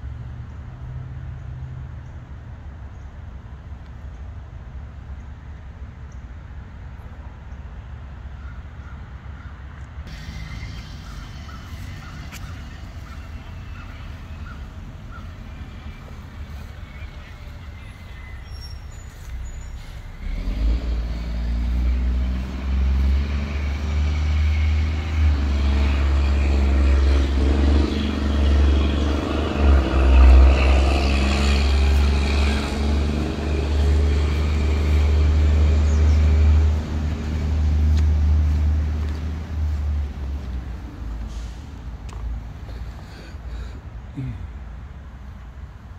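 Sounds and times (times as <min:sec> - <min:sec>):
large vehicle engine rumbling: 0:10.0 - 0:45.9.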